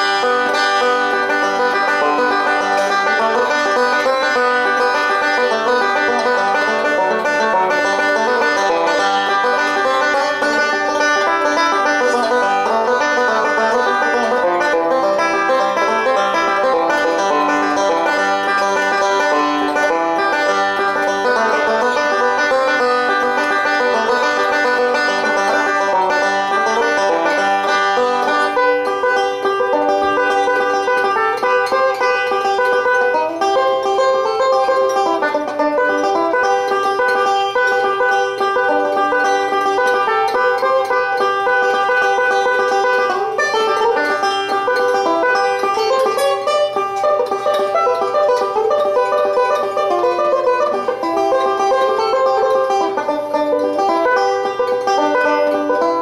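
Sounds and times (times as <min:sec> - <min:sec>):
fingerpicked banjo: 0:00.0 - 0:56.0.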